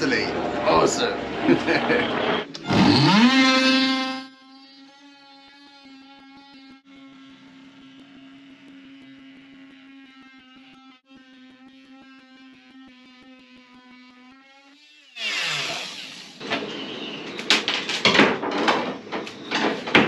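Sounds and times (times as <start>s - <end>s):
oscillating multi-tool cutting: 2.4s - 17.3s.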